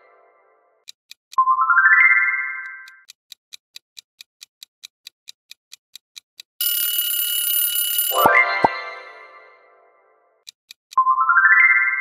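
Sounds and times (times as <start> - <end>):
alarm clock bell ringing: 6.6 - 9.4
countdown timer ticking: 8.1 - 9.4.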